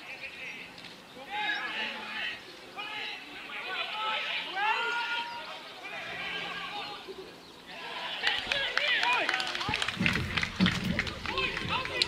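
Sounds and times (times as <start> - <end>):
footballers shouting: 1.2 - 12.0.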